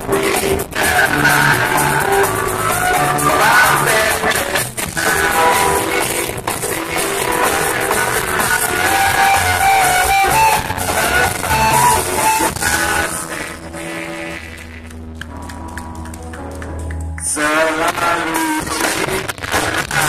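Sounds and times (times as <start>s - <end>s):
person singing: 0.0s - 14.8s, 17.2s - 20.0s
drums: 0.0s - 20.0s
guitar: 0.0s - 20.0s
keyboard: 0.0s - 20.0s.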